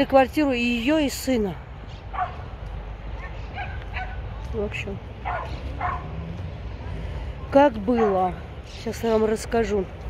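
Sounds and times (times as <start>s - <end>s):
small dog barking: 2.1s - 2.4s, 3.2s - 4.2s, 5.2s - 6.2s, 8.0s - 8.3s.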